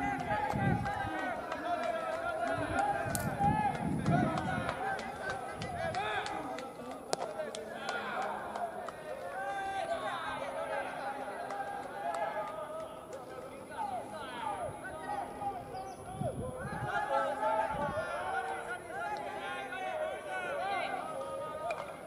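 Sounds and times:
players shouting: 0:00.0 - 0:22.0.

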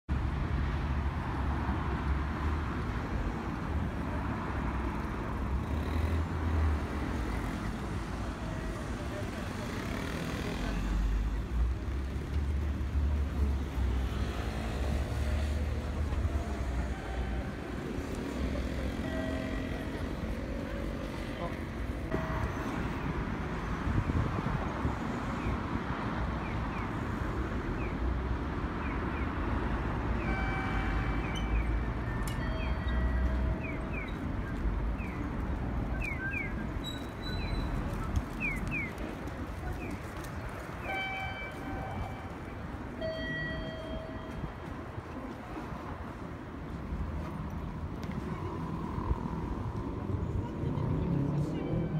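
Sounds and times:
cars passing with low rumble: 0:00.1 - 0:51.9.

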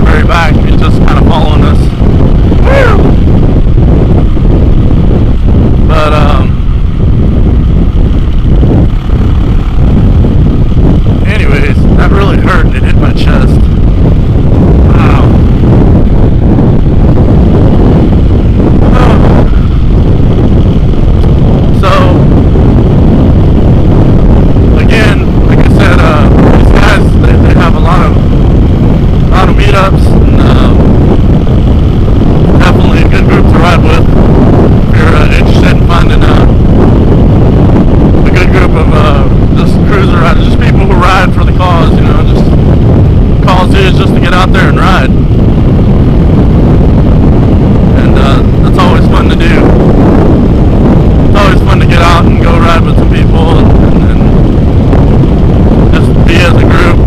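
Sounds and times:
motorcycle engine running: 0:00.0 - 0:44.0
wind buffeting microphone: 0:00.0 - 0:57.0.

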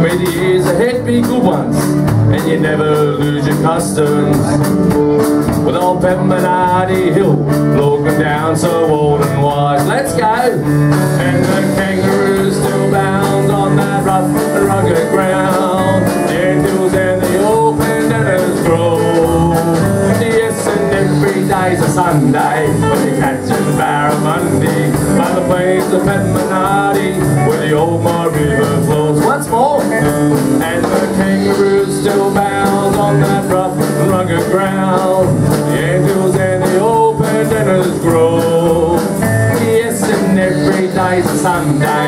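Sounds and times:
live country band playing: 0:00.0 - 0:42.0.

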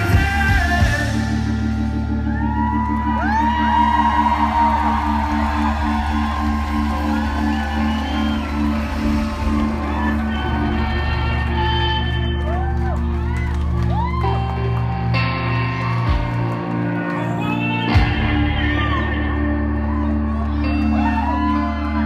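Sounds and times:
live band instrumental: 0:00.0 - 0:22.0
audience whooping and whistling: 0:02.0 - 0:22.0.

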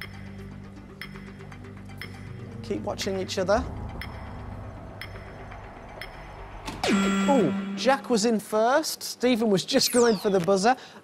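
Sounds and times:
electronic clock ticking: 0:00.0 - 0:02.4, 0:03.0 - 0:08.5, 0:09.8 - 0:10.7
low musical drone: 0:00.0 - 0:08.5.

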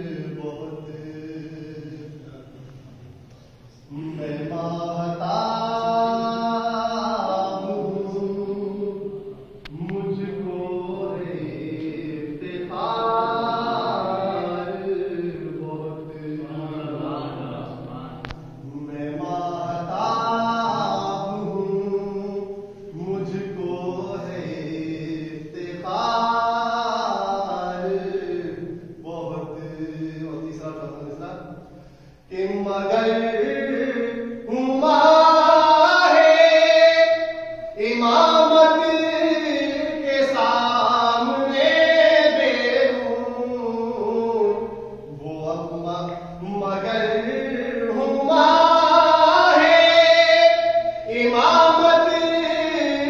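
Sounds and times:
man singing unaccompanied: 0:00.0 - 0:02.7, 0:03.8 - 0:53.0
man chanting a devotional poem: 0:00.0 - 0:53.0.

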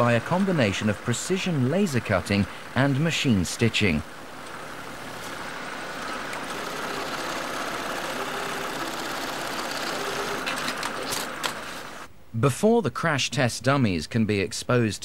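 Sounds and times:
industrial sewing machines running: 0:00.0 - 0:02.8, 0:04.7 - 0:12.1.

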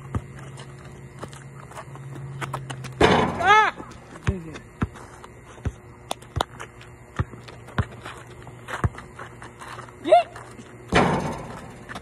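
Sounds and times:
basketball bouncing on asphalt: 0:00.0 - 0:12.0
person shouting: 0:03.4 - 0:03.9, 0:10.0 - 0:10.4.

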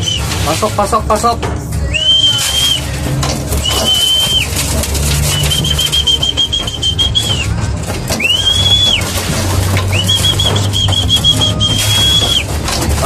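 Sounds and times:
high whistle calls: 0:00.0 - 0:00.6, 0:01.8 - 0:02.9, 0:03.6 - 0:04.6, 0:05.2 - 0:09.1, 0:09.9 - 0:12.5.

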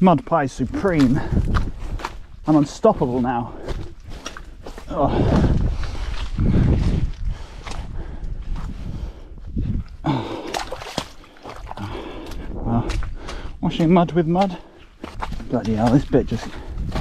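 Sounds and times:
shoes squelching through mud: 0:00.2 - 0:07.9, 0:10.1 - 0:17.0.

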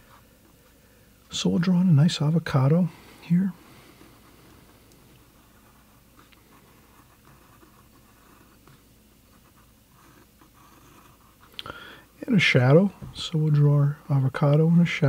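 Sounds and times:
pencil scratching on paper: 0:05.3 - 0:11.5.

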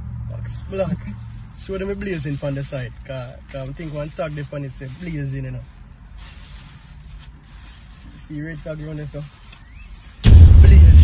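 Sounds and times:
plastic bag rustling: 0:00.8 - 0:10.4
low steady rumble: 0:10.2 - 0:11.0.

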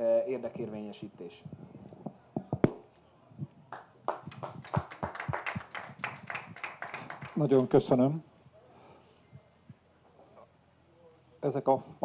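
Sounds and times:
small audience clapping: 0:03.7 - 0:08.0.

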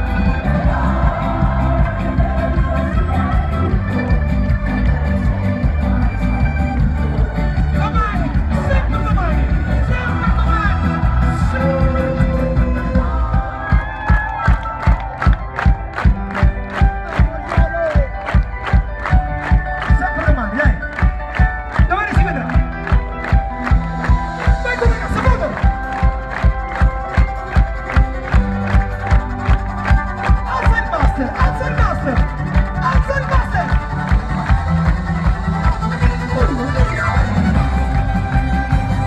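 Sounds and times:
crowd cheering: 0:00.0 - 0:39.0
live rock band playing: 0:00.0 - 0:39.0
steady drum beat: 0:00.0 - 0:39.0.

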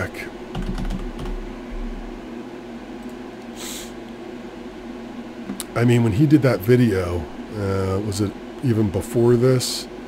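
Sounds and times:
steady mechanical hum: 0:00.0 - 0:10.0
keyboard keystrokes: 0:00.5 - 0:01.4.

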